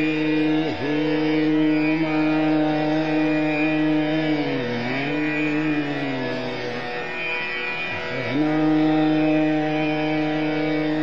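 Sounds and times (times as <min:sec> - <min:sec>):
man singing a long note: 0:00.0 - 0:06.8, 0:08.1 - 0:11.0
harmonium: 0:00.0 - 0:11.0
tanpura drone: 0:00.0 - 0:11.0.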